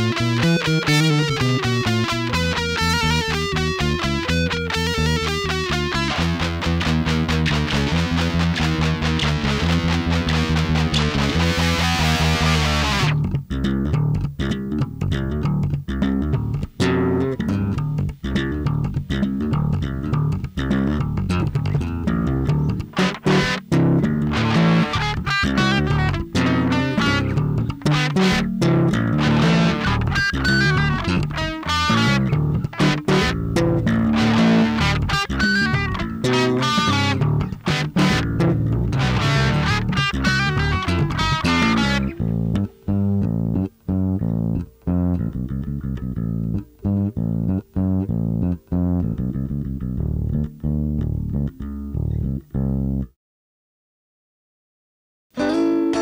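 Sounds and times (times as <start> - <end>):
electric and bass guitar riff: 0.0 - 53.2, 55.3 - 56.0.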